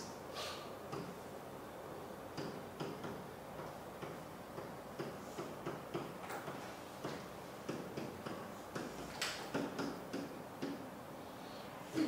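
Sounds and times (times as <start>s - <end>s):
pen tapping on whiteboard: 2.4s - 10.8s.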